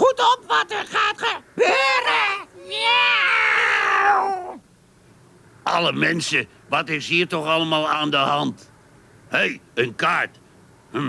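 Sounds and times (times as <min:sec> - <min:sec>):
voices imitating cat meow: 0:01.6 - 0:04.6.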